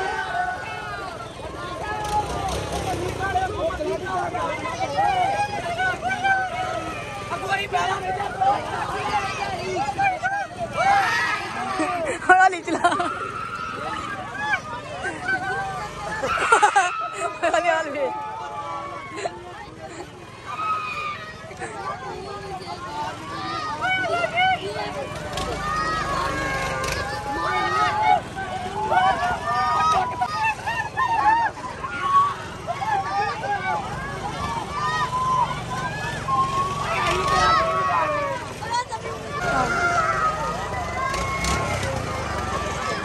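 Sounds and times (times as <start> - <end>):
crowd babble: 0.0 - 43.0
many voices chattering: 0.0 - 43.0
people talking: 0.0 - 43.0.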